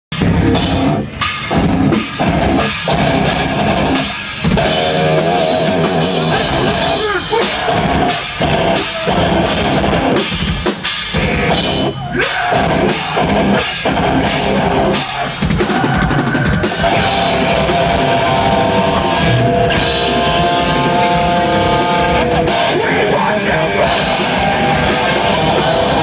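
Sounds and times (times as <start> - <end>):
bass guitar: 0.1 - 26.0
drum kit pounding: 0.1 - 26.0
electric guitars: 0.1 - 26.0.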